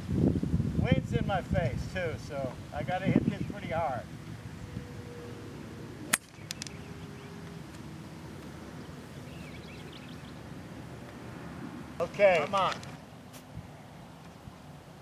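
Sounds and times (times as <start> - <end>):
golf club striking ball: 6.1 - 7.6.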